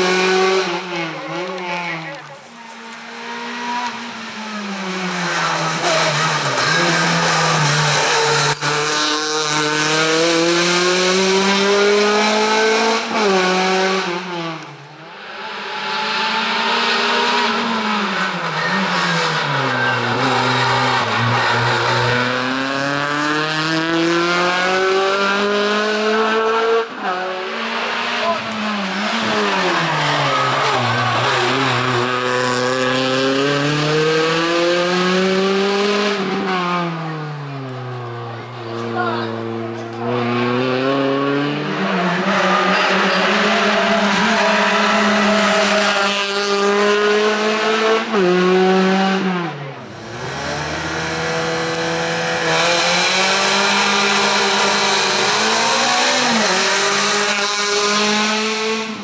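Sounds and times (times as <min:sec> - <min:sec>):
car engine revving hard: 0:00.0 - 0:01.8, 0:02.7 - 0:59.0.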